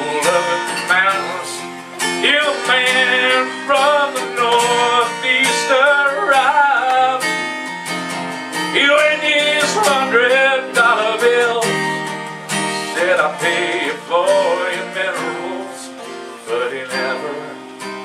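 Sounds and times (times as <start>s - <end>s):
acoustic guitars strummed and picked: 0.0s - 18.0s.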